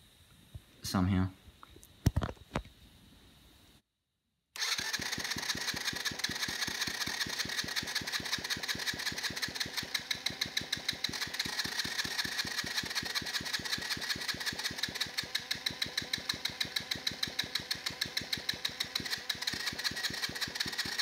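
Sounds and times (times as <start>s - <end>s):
electric starter cranking engine: 4.6s - 21.0s.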